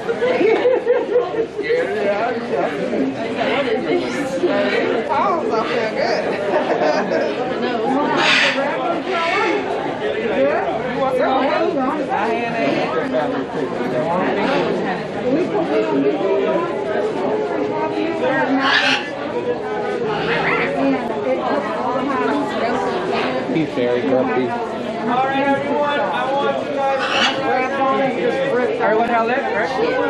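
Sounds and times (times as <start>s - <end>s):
people chattering: 0.0s - 30.0s.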